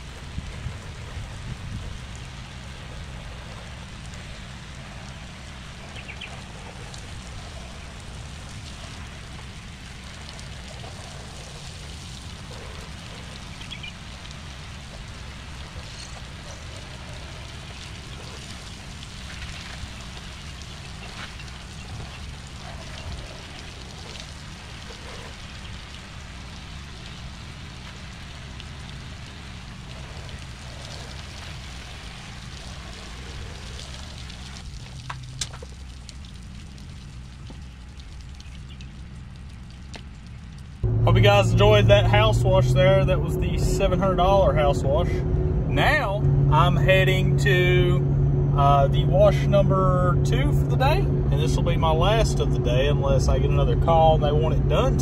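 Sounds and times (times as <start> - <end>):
water spraying hiss: 0.0 - 39.7
low machine hum: 0.0 - 55.0.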